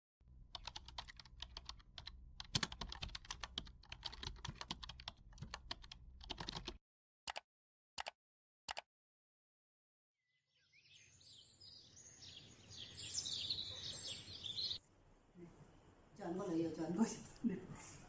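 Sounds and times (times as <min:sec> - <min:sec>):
rapid keyboard typing: 0:00.5 - 0:07.4.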